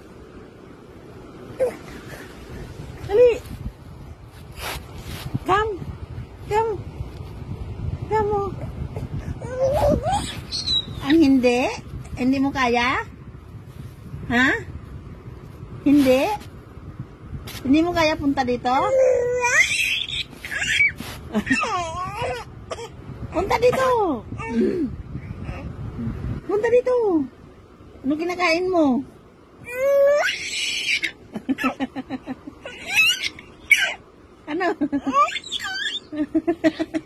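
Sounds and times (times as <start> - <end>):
baby squealing: 18.9 - 22.8, 29.7 - 31.2, 32.6 - 34.0, 35.1 - 36.1.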